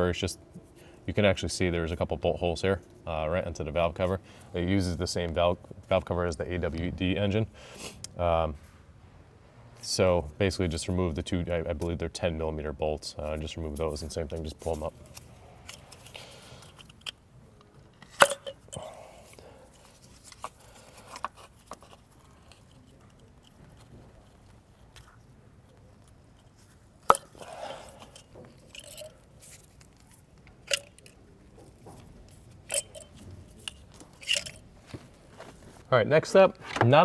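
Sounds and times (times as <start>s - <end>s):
rubber and plastic rustling: 13.0s - 37.0s.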